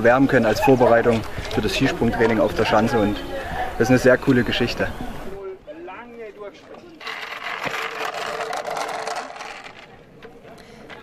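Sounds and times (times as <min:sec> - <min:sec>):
wheeled board rolling on asphalt: 0:00.0 - 0:11.0.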